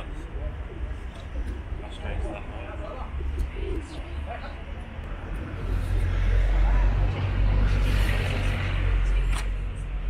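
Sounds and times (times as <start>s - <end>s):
low outdoor rumble: 0.0s - 10.0s
pigeons cooing: 0.2s - 4.3s.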